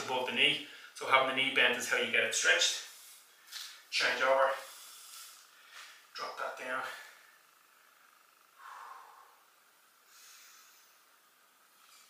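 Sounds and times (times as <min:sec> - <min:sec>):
faint breathing: 0:00.6 - 0:01.0, 0:04.5 - 0:06.1, 0:06.8 - 0:12.0.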